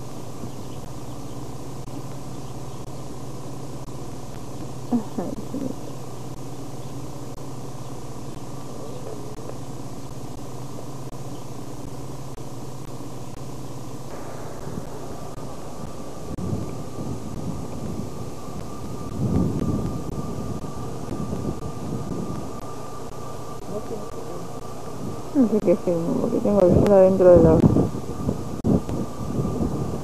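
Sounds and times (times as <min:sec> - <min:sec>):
steady hiss: 0:00.0 - 0:30.0
wind buffeting microphone: 0:14.1 - 0:30.0.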